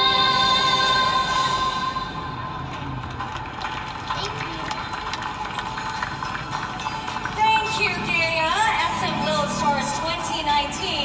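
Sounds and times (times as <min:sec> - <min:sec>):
low crowd murmur: 0:01.5 - 0:11.0
audience clapping: 0:02.6 - 0:08.1.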